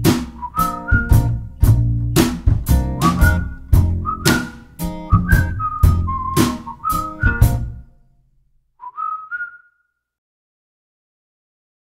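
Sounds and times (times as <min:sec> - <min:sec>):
band beat: 0:00.0 - 0:07.7
whistled melody: 0:00.3 - 0:01.8, 0:02.7 - 0:07.9, 0:08.8 - 0:10.0.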